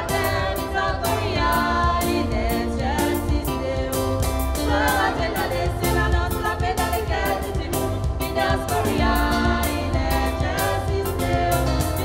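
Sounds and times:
church choir singing a hymn: 0:00.0 - 0:12.0.

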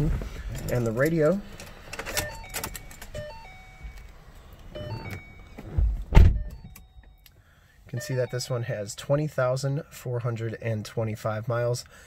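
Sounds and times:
ignition clicks and handling: 0:00.0 - 0:07.4
short electronic tones: 0:02.2 - 0:04.1, 0:04.7 - 0:05.7
heavy thump: 0:05.7 - 0:06.6.

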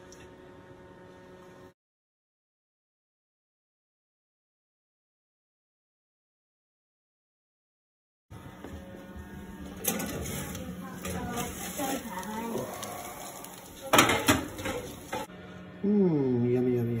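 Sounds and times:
cookware clanking: 0:13.8 - 0:15.3
faint voice: 0:15.8 - 0:17.0.

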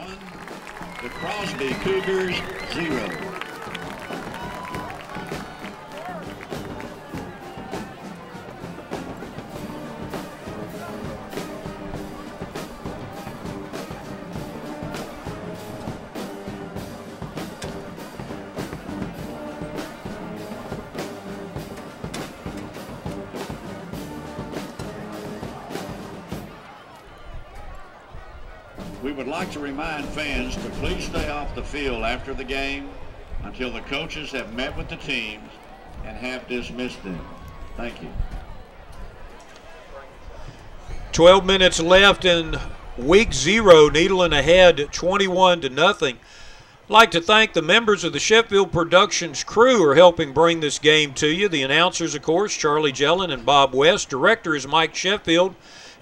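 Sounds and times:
drums keeping beat: 0:00.0 - 0:26.7, 0:28.7 - 0:31.8, 0:40.4 - 0:46.2
brass band music: 0:00.0 - 0:38.4, 0:41.1 - 0:55.6.

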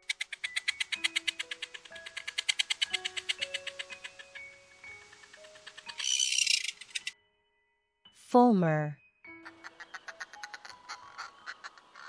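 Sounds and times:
bird rattling call: 0:00.0 - 0:07.2, 0:09.4 - 0:12.0
light background music: 0:00.0 - 0:12.0
bird harsh screech: 0:06.0 - 0:07.1, 0:09.8 - 0:12.0.

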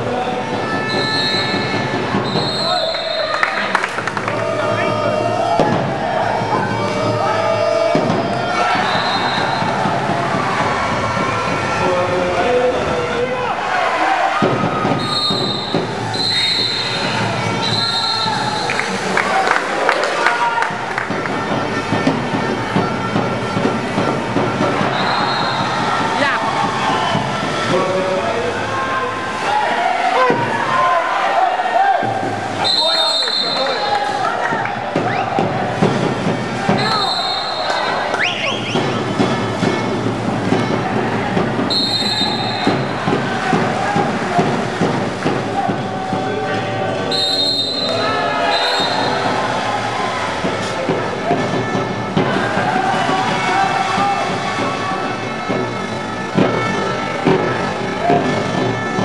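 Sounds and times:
people shouting and calling: 0:00.0 - 0:59.0
referee whistle blasts: 0:00.9 - 0:03.4, 0:08.2 - 0:09.8, 0:14.9 - 0:18.9, 0:24.8 - 0:25.8, 0:32.6 - 0:34.0, 0:36.7 - 0:39.0, 0:41.7 - 0:43.0, 0:47.1 - 0:49.3.

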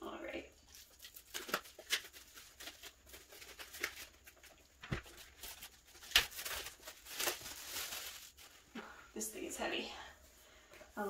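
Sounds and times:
plastic shrink-wrap crinkling: 0:00.6 - 0:08.7.

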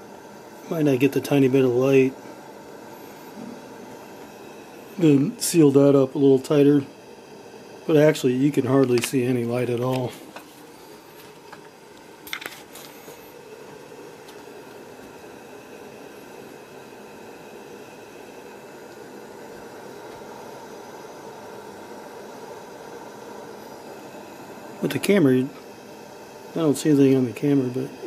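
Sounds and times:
pressure lantern hissing: 0:00.0 - 0:28.0.

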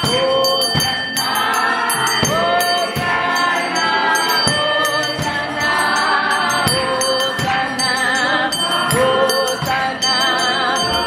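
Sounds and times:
choir singing gospel music: 0:00.0 - 0:11.0.

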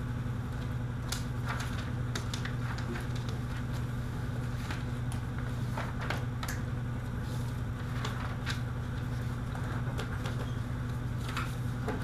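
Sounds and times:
low room hum: 0:00.0 - 0:12.0
paper sheets crackling: 0:00.4 - 0:12.0.

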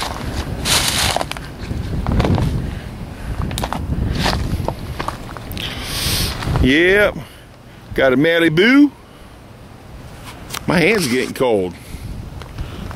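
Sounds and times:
footsteps crunching through dry leaves: 0:00.0 - 0:02.6
wind rumble on microphone: 0:00.0 - 0:07.3, 0:11.8 - 0:12.9.

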